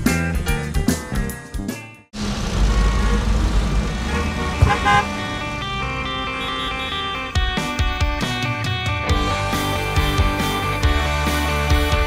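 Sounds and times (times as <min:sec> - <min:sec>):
car engine and road rumble: 0:02.1 - 0:08.0
car horn honk: 0:02.8 - 0:07.4
guitar music: 0:04.4 - 0:12.0.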